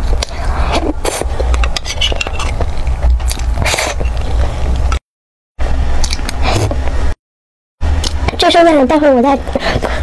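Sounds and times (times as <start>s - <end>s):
metal spoon scraping a tin: 1.6s - 2.6s.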